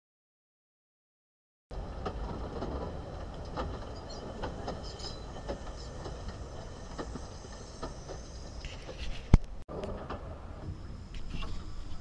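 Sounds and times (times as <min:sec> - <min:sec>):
steam locomotive rolling past: 0:01.7 - 0:12.0
wheels clicking over rails: 0:01.7 - 0:12.0.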